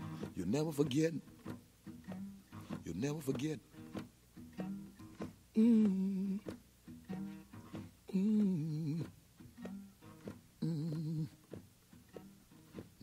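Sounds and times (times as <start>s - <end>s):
plucked acoustic guitar: 0.0s - 13.0s
man humming low: 5.6s - 6.5s, 8.1s - 9.2s, 10.6s - 11.4s.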